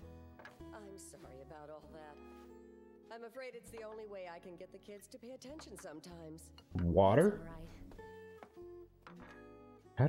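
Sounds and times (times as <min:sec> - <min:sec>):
quiet plucked guitar music: 0:05.4 - 0:10.0.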